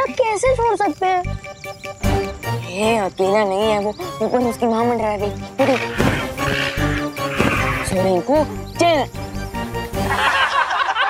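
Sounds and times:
background music: 0:00.0 - 0:10.9
creature screeching cries: 0:05.7 - 0:07.9.

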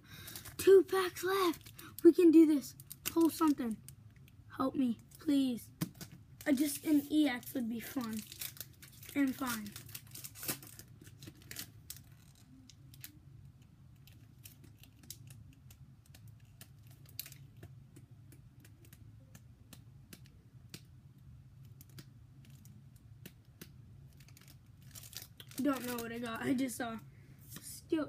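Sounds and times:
trading cards clicking and rustling: 0:02.8 - 0:03.7, 0:05.2 - 0:13.2, 0:21.6 - 0:26.6.

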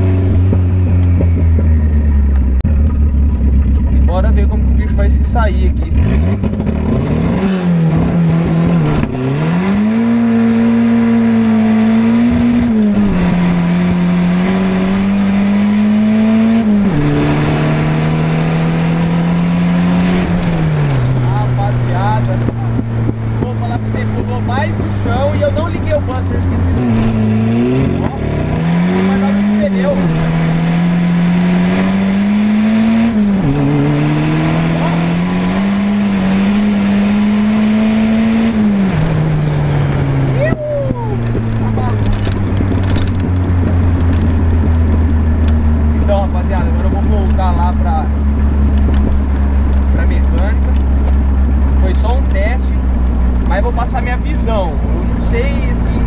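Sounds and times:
car engine revving through gears: 0:00.0 - 0:40.5, 0:41.2 - 0:56.0.

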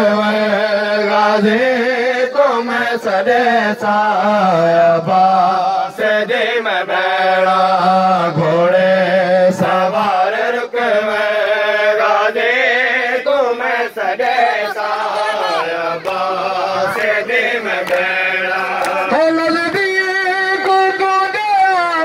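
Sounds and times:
man reciting lament over loudspeaker: 0:00.0 - 0:22.0
men chanting: 0:00.0 - 0:22.0
sharp slaps: 0:17.8 - 0:19.1.

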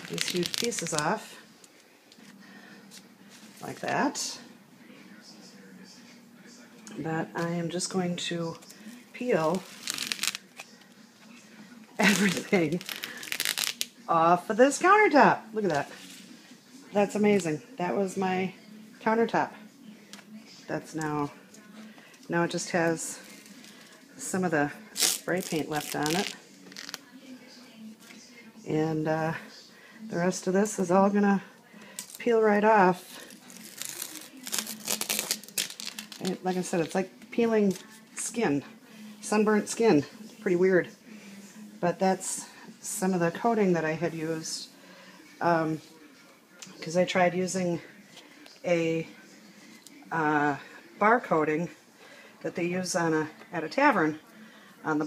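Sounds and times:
finish crackling and tearing: 0:00.0 - 0:01.1, 0:09.6 - 0:10.7, 0:12.0 - 0:13.9, 0:25.0 - 0:27.0, 0:33.2 - 0:36.4.

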